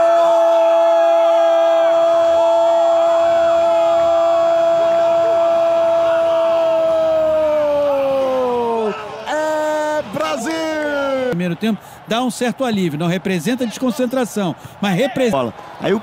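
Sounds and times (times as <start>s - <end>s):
faint crowd cheering: 0.0s - 16.0s.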